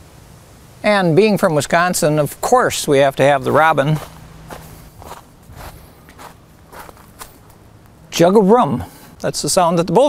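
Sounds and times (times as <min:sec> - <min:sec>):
footsteps on dirt trail: 0:03.4 - 0:07.9.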